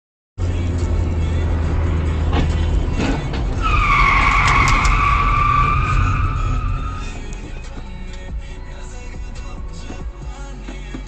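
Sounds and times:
road noise: 0:00.4 - 0:11.0
car tyres squealing: 0:02.4 - 0:07.8.

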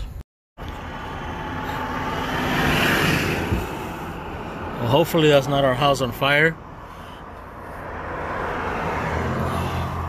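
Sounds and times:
vehicle passing by: 0:00.8 - 0:05.6, 0:06.6 - 0:10.0.

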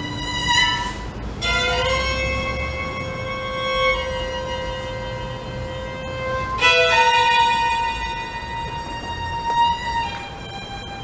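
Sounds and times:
violin bowing long note: 0:00.0 - 0:11.0.

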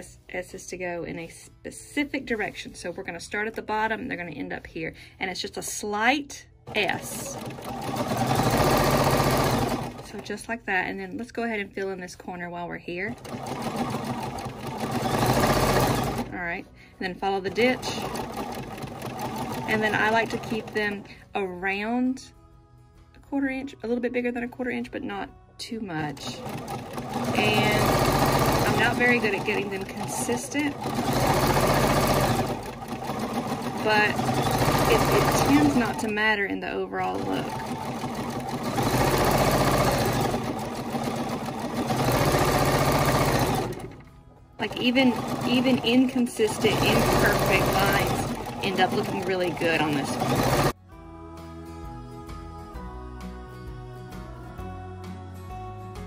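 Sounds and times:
sewing machine stitching rapidly: 0:06.7 - 0:10.2, 0:13.1 - 0:16.4, 0:17.4 - 0:21.0, 0:26.0 - 0:36.2, 0:37.0 - 0:50.8.

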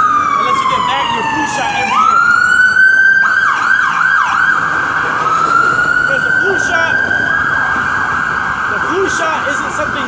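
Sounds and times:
emergency vehicle siren: 0:00.0 - 0:10.0.

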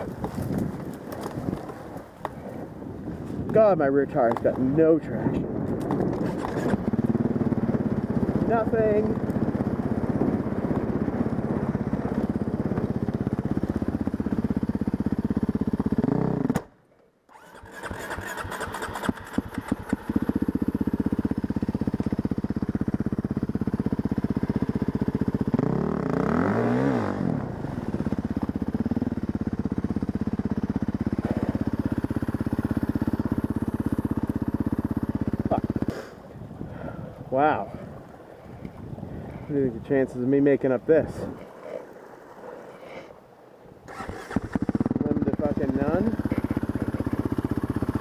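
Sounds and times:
dirt bike engine running: 0:00.0 - 0:37.7, 0:43.8 - 0:48.0.

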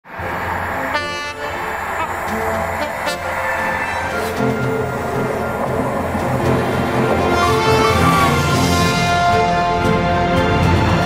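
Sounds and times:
train rumbling: 0:00.0 - 0:11.0
train horn blast: 0:00.8 - 0:04.7, 0:07.0 - 0:11.0.

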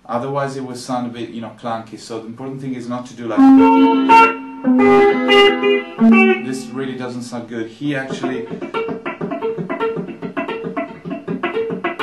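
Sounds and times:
fingerpicked electric guitar arpeggio: 0:03.4 - 0:06.5.

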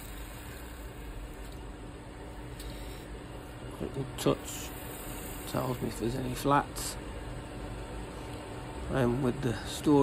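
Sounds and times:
chisel cutting spinning wood: 0:00.0 - 0:01.3.

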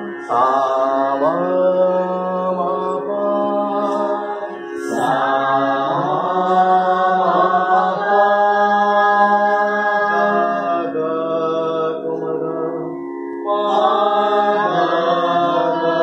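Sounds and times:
person singing slow chant: 0:00.0 - 0:16.0
tanpura drone: 0:00.0 - 0:16.0.

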